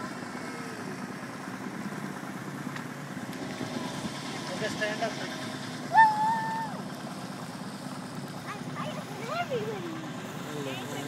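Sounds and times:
small boat motor running: 0:00.0 - 0:11.0
person shouting: 0:05.9 - 0:06.8.

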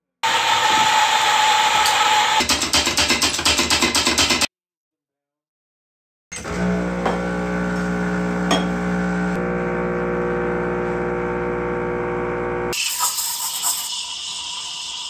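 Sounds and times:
espresso machine pump humming: 0:06.5 - 0:14.2
steam wand hissing: 0:12.7 - 0:15.0.

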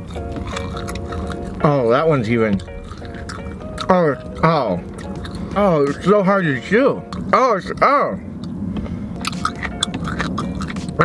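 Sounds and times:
person chewing close to microphone: 0:00.0 - 0:07.3, 0:09.2 - 0:11.0.

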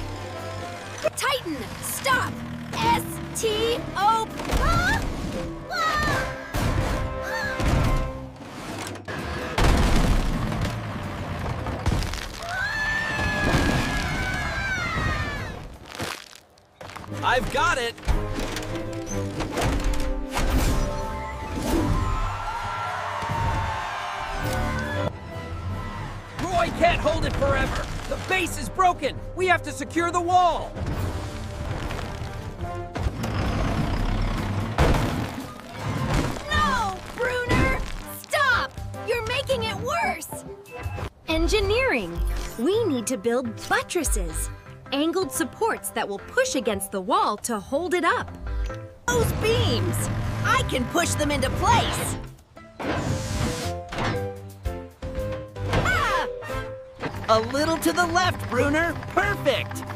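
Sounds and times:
background music: 0:00.0 - 0:11.4, 0:16.9 - 0:59.9
bulldozer rumbling: 0:00.0 - 0:15.8, 0:24.6 - 0:38.1, 0:48.2 - 0:53.1, 0:56.3 - 0:59.9
brick wall crash: 0:09.5 - 0:12.5, 0:34.7 - 0:38.1
bricks cracking and crumbling: 0:09.6 - 0:20.3, 0:26.4 - 0:28.6, 0:31.0 - 0:34.0, 0:34.7 - 0:38.4.

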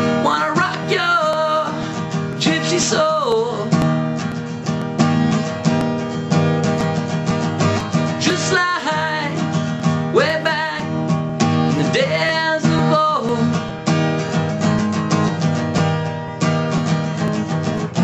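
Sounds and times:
man singing: 0:00.0 - 0:03.8, 0:08.0 - 0:13.7
acoustic guitar strumming chords: 0:00.0 - 0:18.0.

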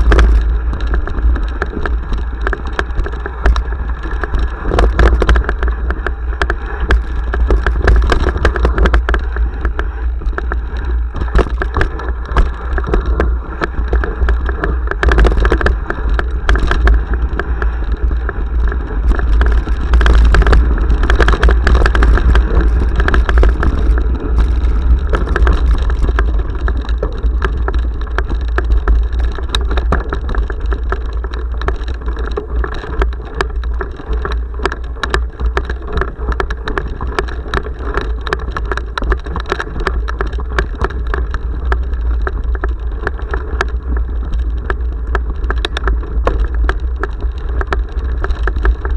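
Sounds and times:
bike rattling over bumps: 0:00.0 - 0:48.9
wind rumble on microphone: 0:00.0 - 0:48.9.

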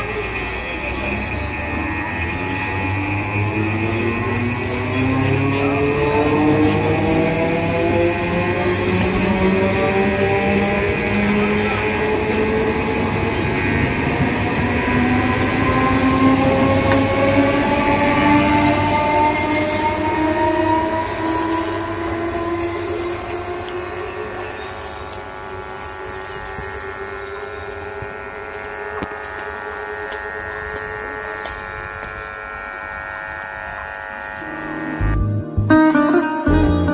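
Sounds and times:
train wheels rumbling: 0:00.0 - 0:35.1
train traction motors whining: 0:00.0 - 0:36.8.

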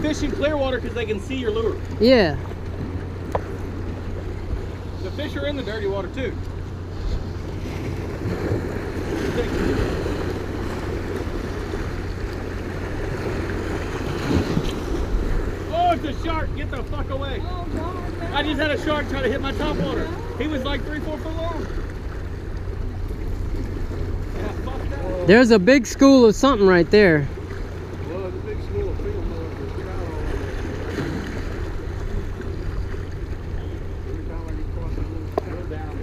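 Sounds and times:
waves splashing against rocks: 0:00.0 - 0:36.0.

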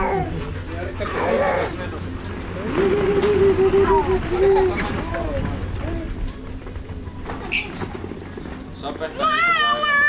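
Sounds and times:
toddler babbling: 0:00.0 - 0:00.3
steady low hum: 0:00.0 - 0:10.0.

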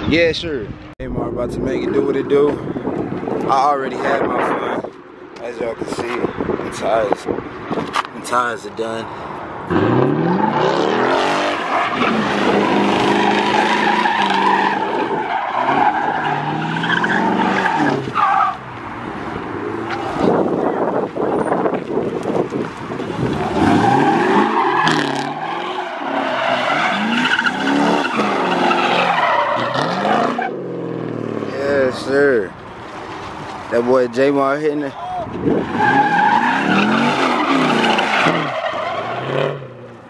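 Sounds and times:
tyres squealing and skidding: 0:09.1 - 0:32.1, 0:32.8 - 0:40.0
car engine revving hard: 0:09.7 - 0:18.2, 0:23.2 - 0:31.5, 0:35.5 - 0:39.8.

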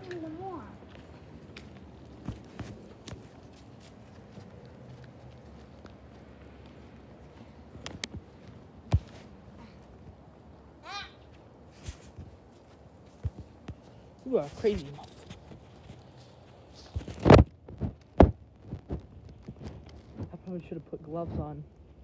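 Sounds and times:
footsteps: 0:00.0 - 0:10.2, 0:11.2 - 0:20.6.

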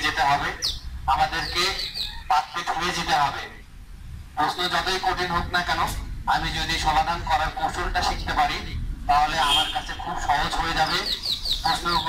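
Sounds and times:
man speaking loudly: 0:00.0 - 0:03.6, 0:04.4 - 0:12.0.

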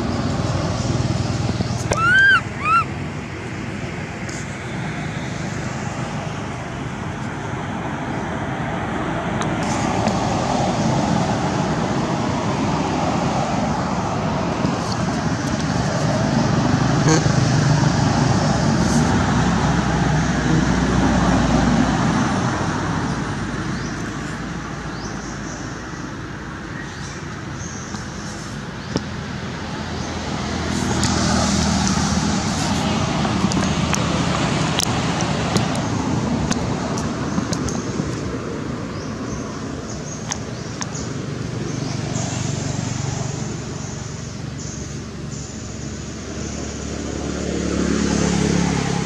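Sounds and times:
road traffic rumble: 0:00.0 - 0:49.0.

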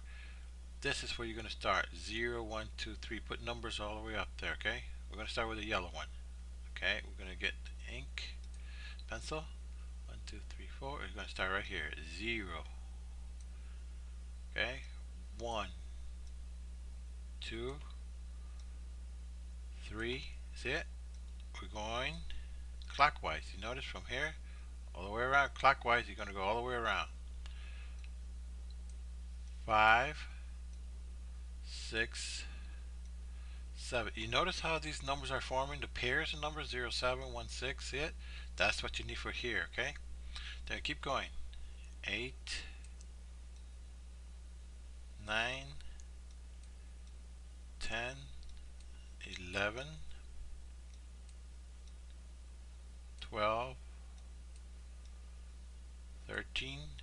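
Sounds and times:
mains electrical hum: 0:00.0 - 0:57.0
man speaking: 0:00.8 - 0:08.4, 0:09.1 - 0:12.8, 0:14.5 - 0:15.8, 0:17.4 - 0:18.0, 0:19.8 - 0:20.9, 0:21.5 - 0:27.2, 0:29.6 - 0:30.4, 0:31.6 - 0:32.7, 0:33.8 - 0:41.4, 0:42.0 - 0:42.8, 0:45.2 - 0:46.0, 0:47.8 - 0:48.4, 0:49.2 - 0:50.2, 0:53.2 - 0:53.8, 0:56.2 - 0:57.0.

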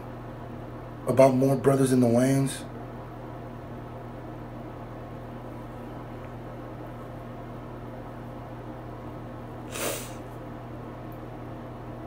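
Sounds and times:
steady low hum: 0:00.0 - 0:12.0
short hiss: 0:09.7 - 0:10.2.

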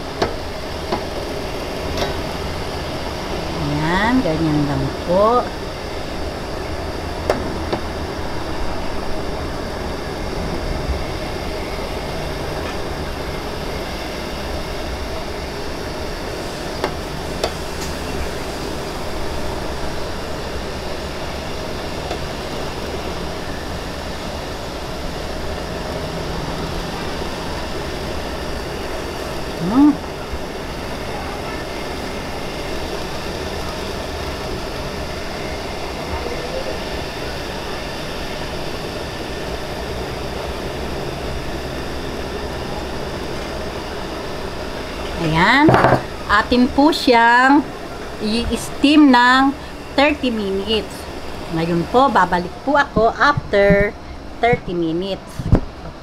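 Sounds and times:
boiling water hissing and rumbling: 0:00.0 - 0:56.0.

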